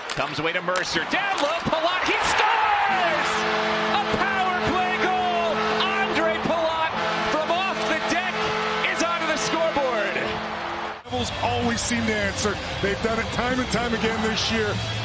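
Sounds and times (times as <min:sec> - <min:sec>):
crowd roaring and cheering: 0:00.0 - 0:15.0
goal horn blaring: 0:02.3 - 0:11.0.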